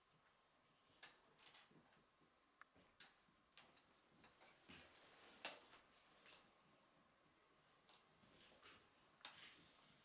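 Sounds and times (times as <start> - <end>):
soft rustles: 3.7 - 6.8, 7.4 - 10.0.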